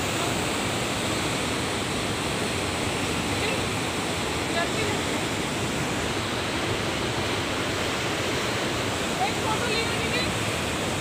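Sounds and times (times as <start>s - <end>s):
river rapids rushing: 0.0s - 11.0s.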